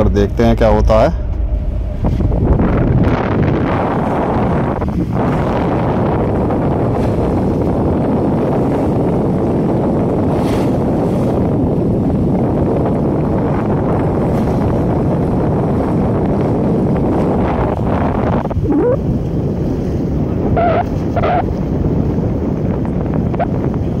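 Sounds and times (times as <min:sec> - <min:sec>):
water washing against hull: 0:00.0 - 0:24.0
wind buffeting microphone: 0:00.0 - 0:24.0.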